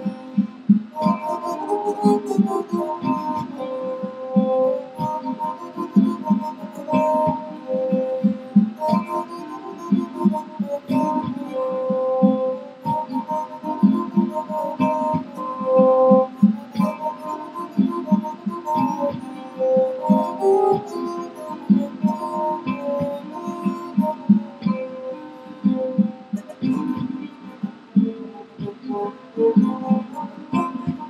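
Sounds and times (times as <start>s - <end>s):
plucked stick-zither: 0.0s - 31.0s.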